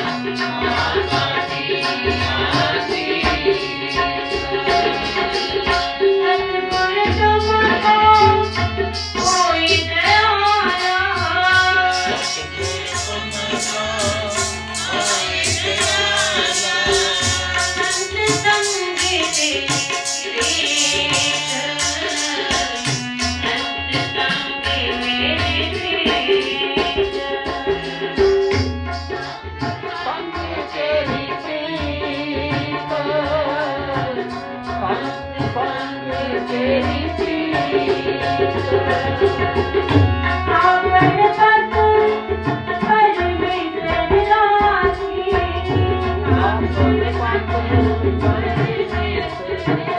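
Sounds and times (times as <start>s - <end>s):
woman singing: 0.0s - 28.5s, 29.7s - 49.9s
harmonium chords: 0.0s - 49.9s
tabla drumming: 0.0s - 49.9s
woman singing a hymn: 9.2s - 13.2s, 34.8s - 39.4s, 42.8s - 49.9s.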